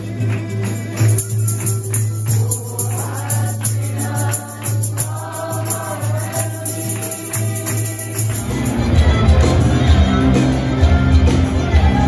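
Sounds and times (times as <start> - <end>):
acoustic guitar: 0.0 - 12.0
group singing worship song: 0.0 - 12.0
shaken hand percussion: 0.0 - 12.0.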